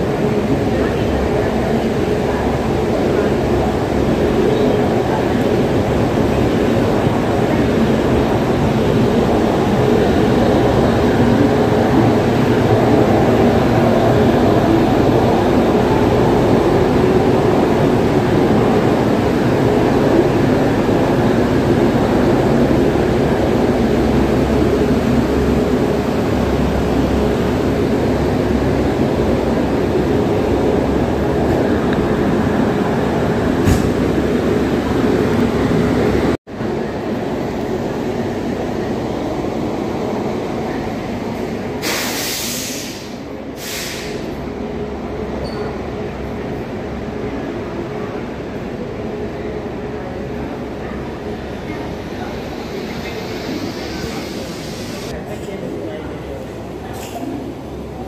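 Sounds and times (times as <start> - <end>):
passenger train humming and rumbling: 0.0 - 58.0.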